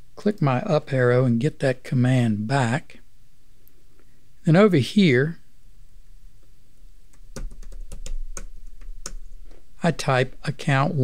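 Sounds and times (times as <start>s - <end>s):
typing on computer keyboard: 7.1s - 9.3s.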